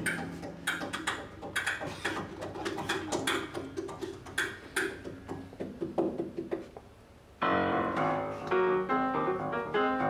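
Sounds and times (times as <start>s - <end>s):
clicks and taps inside piano: 0.0s - 6.9s
muted piano notes: 7.4s - 10.0s.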